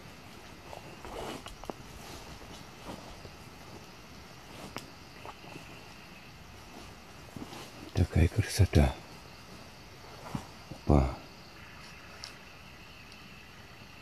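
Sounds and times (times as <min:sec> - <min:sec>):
footsteps through grass: 0:00.0 - 0:08.4, 0:09.0 - 0:10.9
rustling of stems and branches: 0:00.0 - 0:13.5.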